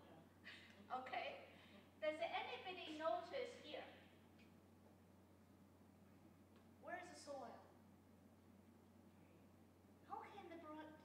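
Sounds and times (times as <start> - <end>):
woman speaking: 0.0 - 4.1, 6.8 - 7.7, 10.1 - 11.0
faint low hum: 0.0 - 11.0.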